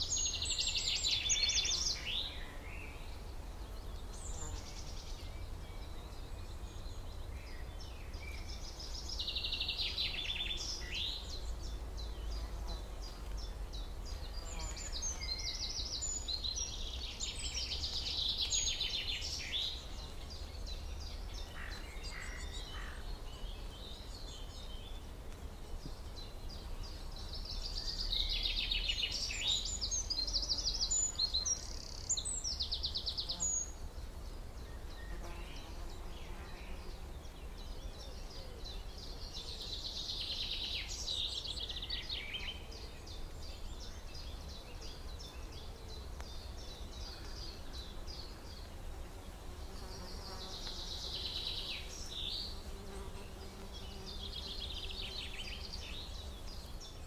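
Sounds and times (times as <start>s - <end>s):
small birds trilling and chirping: 0.0s - 57.0s.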